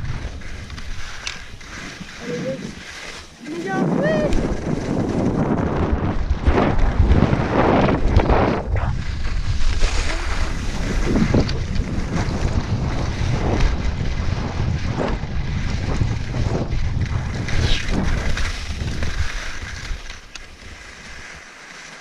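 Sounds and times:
wind buffeting microphone: 0.0s - 21.2s
skis scraping over snow: 0.0s - 22.0s.

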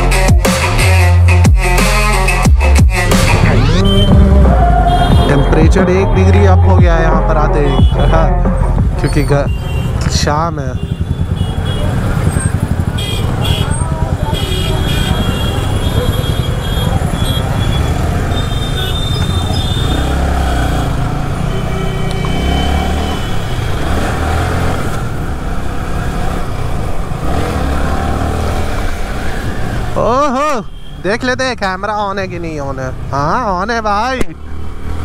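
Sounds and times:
motorcycle engine accelerating: 10.8s - 30.1s.

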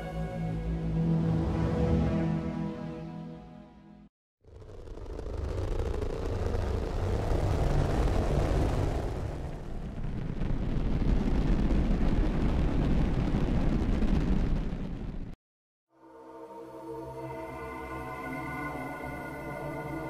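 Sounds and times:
deep noisy synth rumble: 4.4s - 15.4s.

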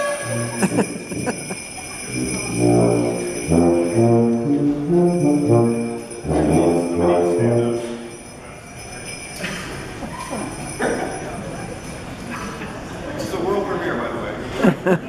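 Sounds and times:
brass ensemble playing: 0.0s - 8.3s
sleigh bells jingling: 0.0s - 12.9s.

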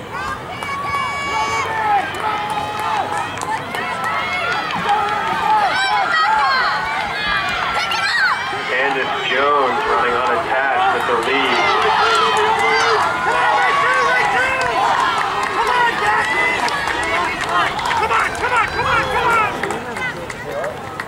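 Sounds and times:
spectators shouting and cheering: 0.0s - 21.0s.

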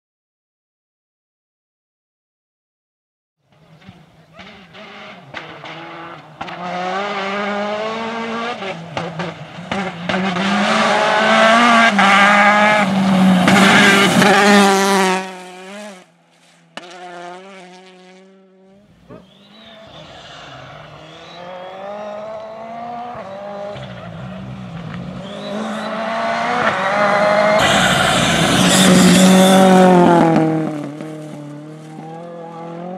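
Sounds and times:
rally car approaching: 3.4s - 32.9s
rally car engine revving: 3.5s - 32.9s.

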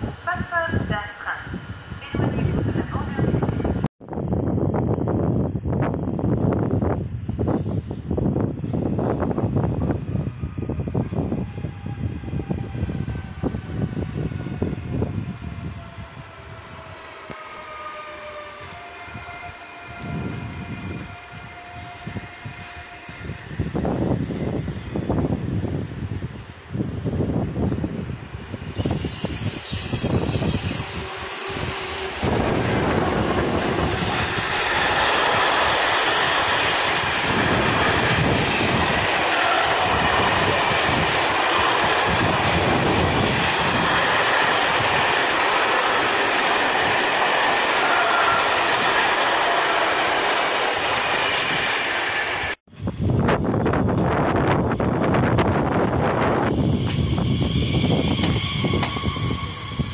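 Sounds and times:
high wheel squeal: 27.9s - 35.7s, 56.4s - 59.9s
train wheels clattering on rails: 57.9s - 59.3s.

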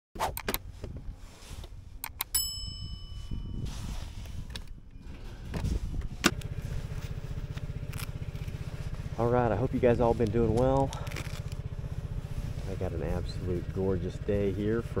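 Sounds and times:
clicks: 2.0s - 2.4s
bell-like ding: 2.3s - 3.7s
scooter engine idling: 2.6s - 15.0s.

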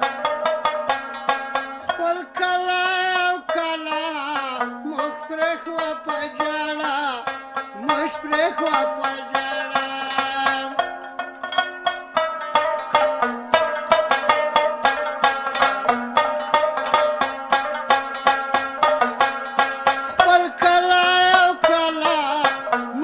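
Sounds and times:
plucked lute runs: 0.0s - 23.0s.

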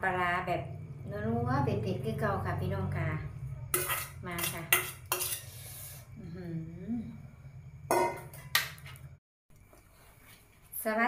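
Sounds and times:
scraping on metal tray: 3.7s - 6.1s
metal pot clanking on tray: 7.9s - 8.8s.

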